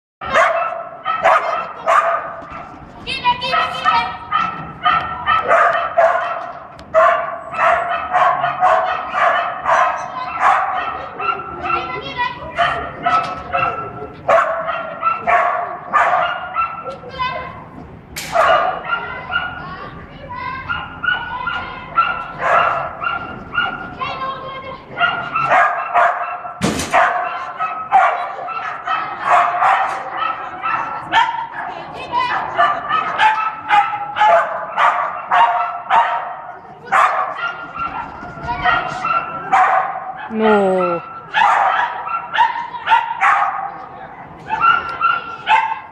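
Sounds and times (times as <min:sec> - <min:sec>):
dog barking excitedly: 0:00.2 - 0:17.6, 0:18.2 - 0:19.8, 0:20.4 - 0:43.8, 0:44.4 - 0:45.9.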